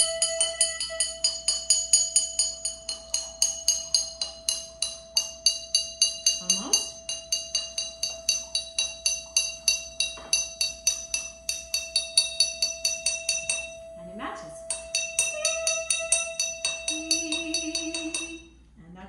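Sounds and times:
drinking glass being tapped: 0:00.0 - 0:18.5.

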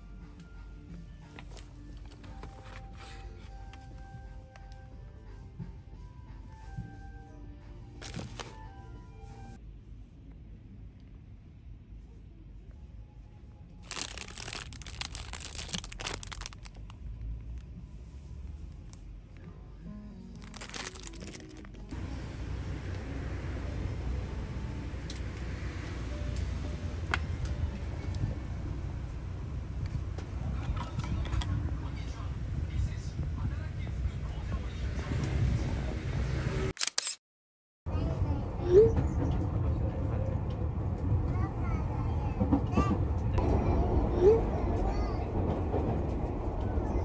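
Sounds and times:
shop background noise: 0:06.5 - 0:10.5, 0:11.8 - 0:19.7, 0:20.4 - 0:25.1
plastic packaging crackling: 0:08.0 - 0:08.6, 0:13.8 - 0:17.0, 0:20.4 - 0:21.9.

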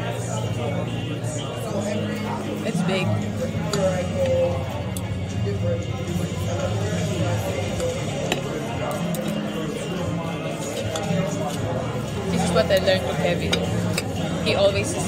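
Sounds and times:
background music: 0:00.0 - 0:15.0.

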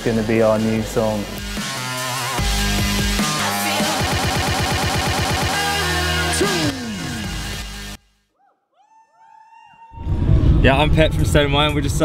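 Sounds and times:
music: 0:00.0 - 0:08.2.

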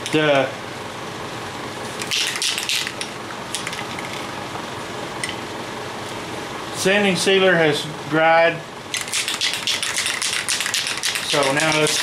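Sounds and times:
fan blowing: 0:00.0 - 0:12.0.

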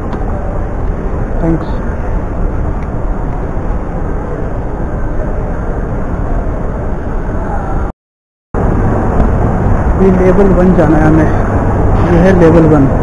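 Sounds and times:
airport terminal hubbub: 0:00.0 - 0:07.9, 0:08.6 - 0:13.0.

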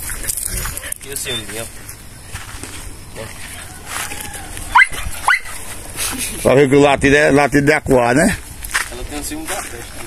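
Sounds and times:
dog baying barks: 0:04.7 - 0:05.6.

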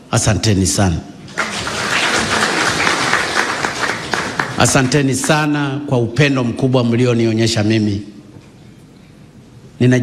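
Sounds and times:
audience applauding: 0:01.3 - 0:05.5.

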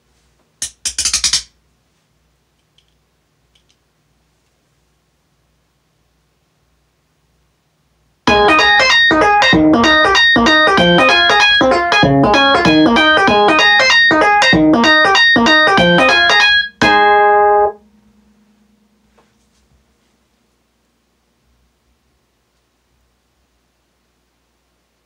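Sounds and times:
electronic ringtone melody: 0:08.3 - 0:17.8.

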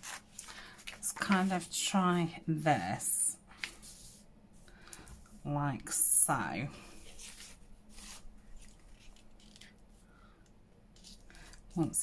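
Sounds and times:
paper rustling: 0:00.0 - 0:01.8, 0:06.9 - 0:09.8.

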